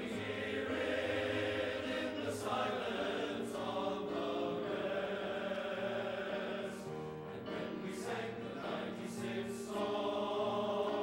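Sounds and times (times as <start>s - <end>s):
men's choir singing: 0.0s - 11.0s.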